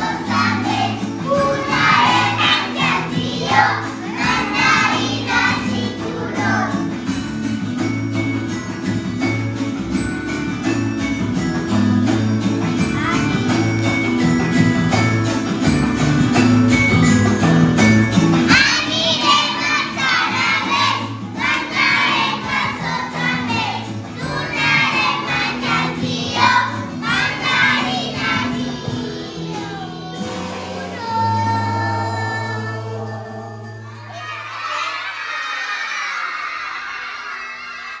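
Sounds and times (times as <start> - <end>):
children singing a carol: 0.0 - 6.9, 18.5 - 34.9
backing music: 0.0 - 34.2.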